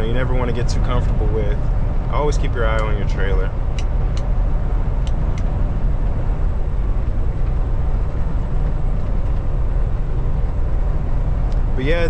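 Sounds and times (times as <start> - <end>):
truck engine drone: 0.0 - 12.0.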